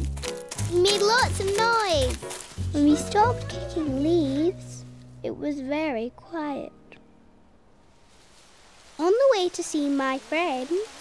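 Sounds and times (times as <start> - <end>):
soft woodland rushing noise: 0.0 - 4.9, 7.7 - 11.0.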